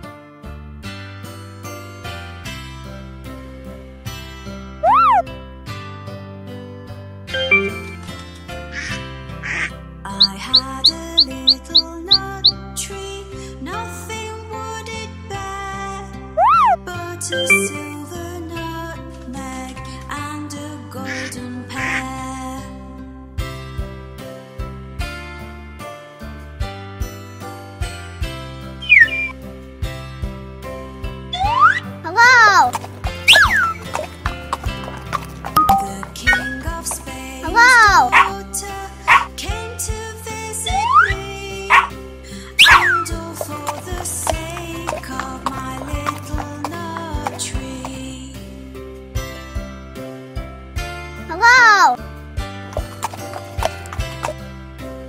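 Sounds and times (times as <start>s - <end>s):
cartoon duck quacks: 4.8s - 5.2s
children's song instrumental: 9.5s - 12.6s, 31.3s - 34.2s, 34.9s - 48.3s, 51.3s - 52.0s
cartoon hooves clip-clopping: 9.6s - 12.6s, 31.4s - 38.4s, 39.1s - 39.4s, 40.7s - 42.0s, 42.6s - 48.2s, 52.7s - 54.5s.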